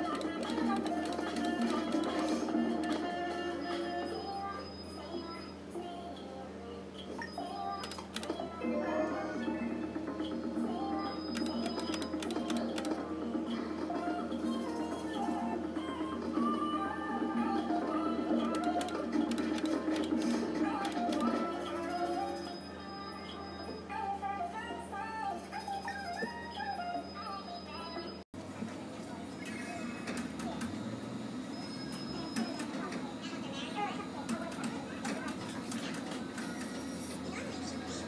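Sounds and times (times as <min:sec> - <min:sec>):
rapid reel-spin clicks: 0:00.0 - 0:03.0, 0:07.8 - 0:08.4, 0:11.3 - 0:13.0, 0:18.4 - 0:21.3
faint voices: 0:31.8 - 0:38.0.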